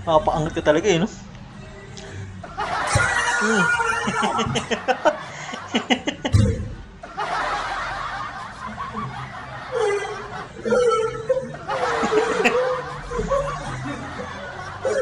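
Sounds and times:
background music: 0:00.0 - 0:15.0
snickering laughter: 0:02.5 - 0:15.0.

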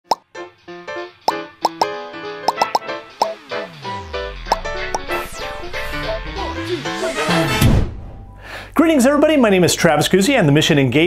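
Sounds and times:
cartoon plop sounds: 0:01.3 - 0:03.4
falling pitch sweep: 0:02.5 - 0:08.4.

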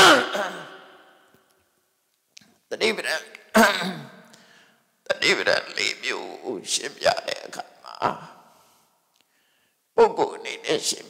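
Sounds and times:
man's drawn-out voice through microphone: 0:02.7 - 0:04.1, 0:05.1 - 0:08.4, 0:10.0 - 0:11.0.

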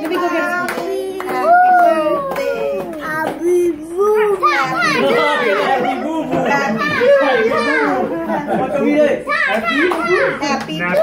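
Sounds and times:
children calling out and talking: 0:00.4 - 0:08.2, 0:09.1 - 0:11.0.

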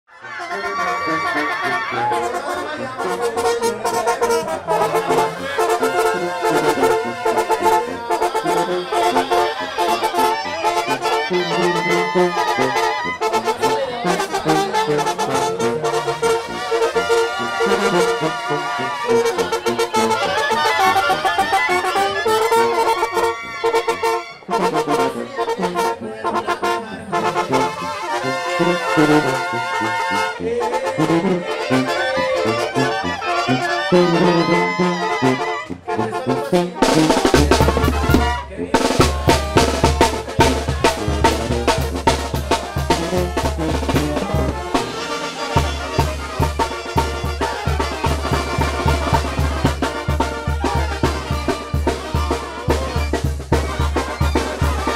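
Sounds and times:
brass band playing: 0:00.1 - 0:54.9.

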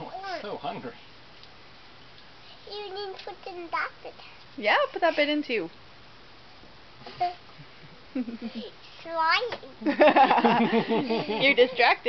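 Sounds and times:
child laughing: 0:08.2 - 0:08.8, 0:09.8 - 0:11.7.

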